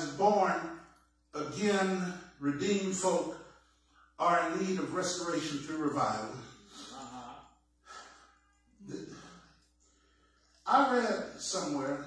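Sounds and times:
breathy exhale: 7.8 - 8.4.

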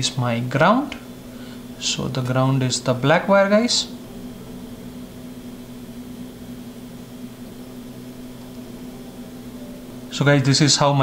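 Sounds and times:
machine hum with faint hiss: 0.0 - 11.0.

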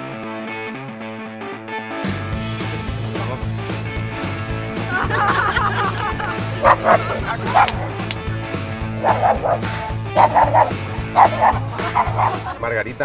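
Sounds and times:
background music: 0.0 - 13.0
small dog barking: 6.6 - 8.0, 9.0 - 12.5.

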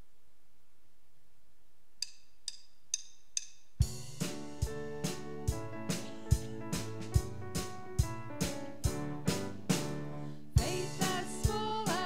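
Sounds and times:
drumsticks clicking together: 2.0 - 3.6
kick drum beat: 3.8 - 9.9, 10.6 - 12.0.

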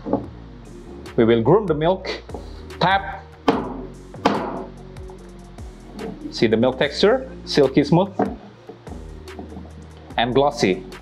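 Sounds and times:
background music: 0.0 - 11.0
metal jug knocking on wooden counter: 3.5 - 4.7, 8.1 - 9.8.

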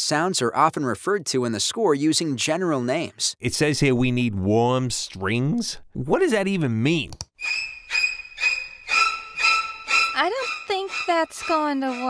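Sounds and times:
high-pitched synthesizer tone: 7.4 - 12.0.

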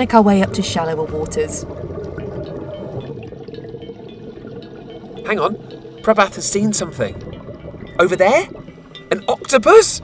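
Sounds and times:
faint bubbling from regulators: 0.0 - 10.0
muffled underwater water wash: 0.0 - 10.0.

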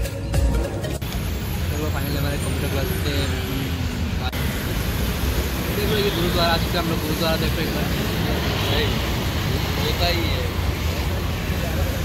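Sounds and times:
background music: 0.0 - 1.2
traffic hiss: 1.0 - 12.0.

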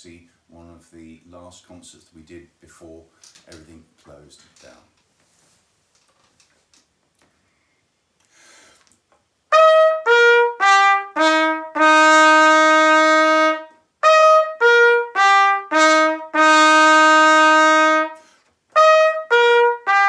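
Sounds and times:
solo trumpet playing: 9.5 - 20.0.

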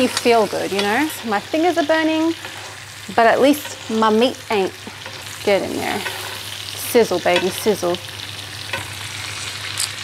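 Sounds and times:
steaks sizzling in a frying pan: 0.0 - 10.0.

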